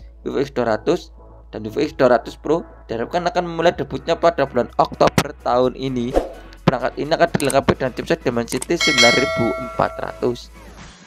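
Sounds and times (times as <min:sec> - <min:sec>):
notification bell ding: 0:08.8 - 0:10.4.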